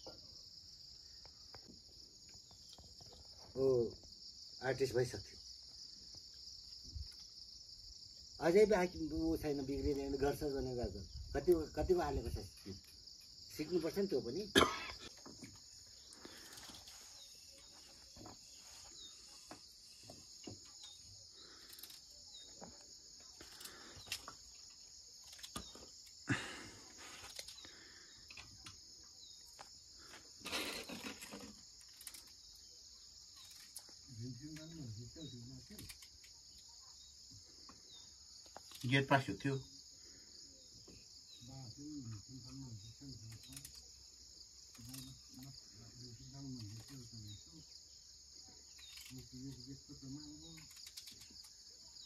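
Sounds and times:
insect chorus chirring: 0.0 - 52.0
man speaking softly: 34.1 - 35.9, 41.4 - 43.7, 44.8 - 47.6, 49.1 - 50.7.

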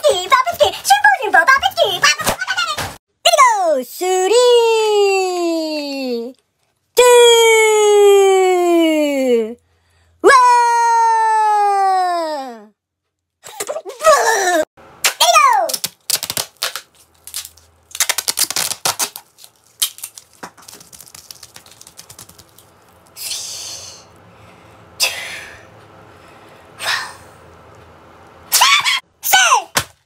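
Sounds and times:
tape ripping: 15.0 - 23.0
tape crackling off roll: 15.0 - 23.1.

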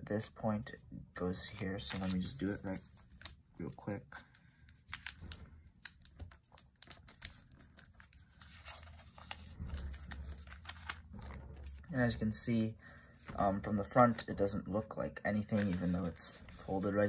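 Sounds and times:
paper rustling and crinkling: 1.4 - 12.2, 15.4 - 17.0
small paper crackles and taps: 4.3 - 11.9.

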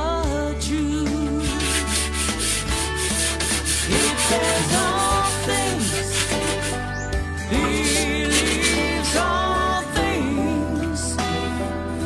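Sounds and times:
background music with singing: 0.0 - 12.0
cloth wiping glass: 1.6 - 6.8, 7.6 - 9.3.

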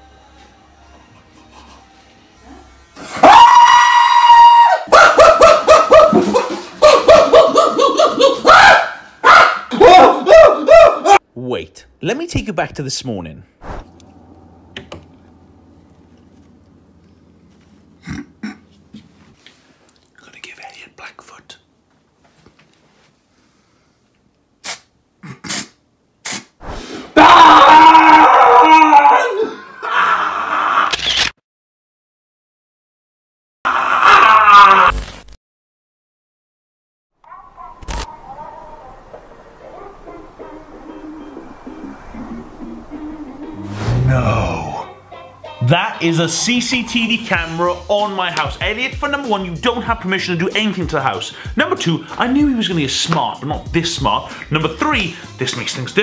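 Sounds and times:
man screaming: 3.1 - 5.2, 8.4 - 11.2, 27.2 - 30.9, 33.7 - 35.0, 44.0 - 44.9
man yelping: 6.8 - 11.2, 27.2 - 30.5, 44.0 - 44.9.

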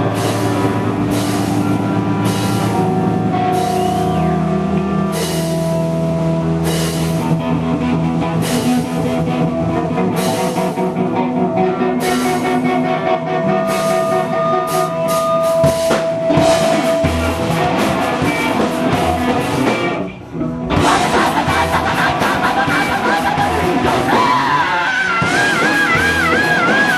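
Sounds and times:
drum kit with cymbal crashes: 0.0 - 11.1, 12.0 - 26.9
bass: 0.0 - 26.9
electric guitars holding notes: 0.0 - 26.9.

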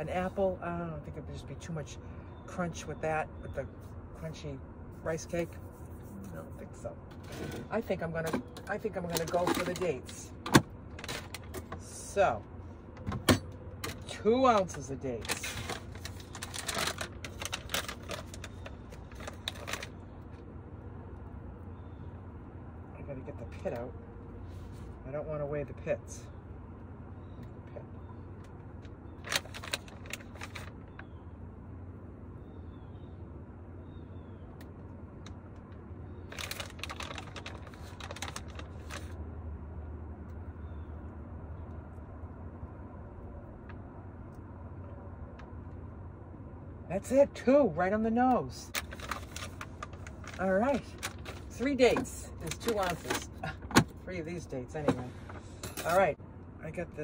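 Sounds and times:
plastic bag crinkling: 15.3 - 20.0, 29.2 - 31.0, 36.3 - 39.2, 48.8 - 53.3.

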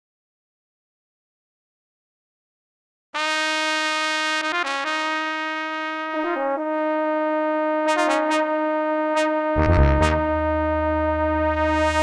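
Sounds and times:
sampled brass chords: 3.2 - 12.0.

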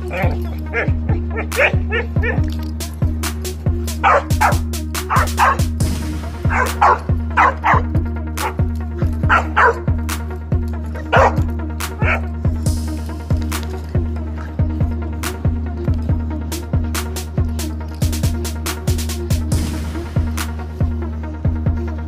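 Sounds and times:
dog barking and yipping: 0.0 - 2.7, 3.9 - 5.8, 6.4 - 10.0, 10.8 - 12.4
music with heavy bass beat: 0.0 - 22.0.

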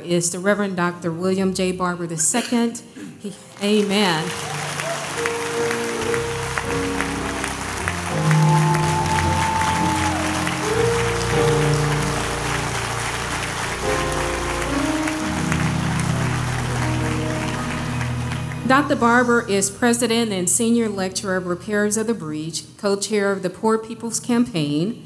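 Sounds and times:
crowd applauding: 3.5 - 19.2
church organ chords: 4.2 - 19.6.

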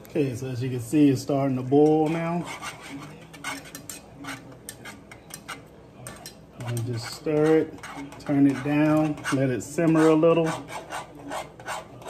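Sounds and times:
wire whisk clicking against pan: 3.5 - 9.1.

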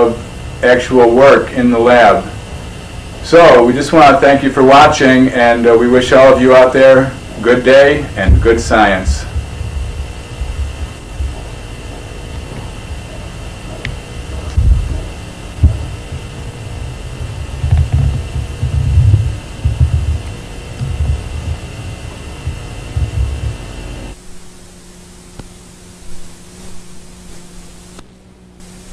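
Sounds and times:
faint steady hum: 0.0 - 28.9
low rumbling thumps: 1.8 - 24.6.

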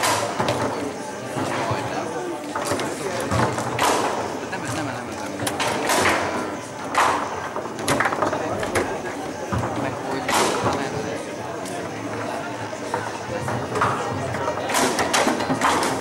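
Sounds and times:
murmur of voices: 0.0 - 16.0
foosball knocks and clacks: 5.4 - 10.9, 12.9 - 16.0.

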